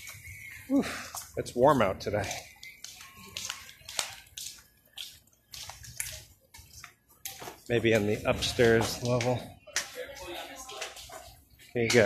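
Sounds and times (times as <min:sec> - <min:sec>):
footsteps on hard paving: 0:00.0 - 0:10.0.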